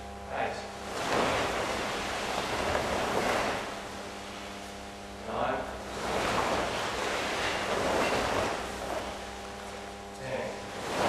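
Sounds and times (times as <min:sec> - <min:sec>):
cloth rustling and feet sliding on mats: 0:00.8 - 0:11.0.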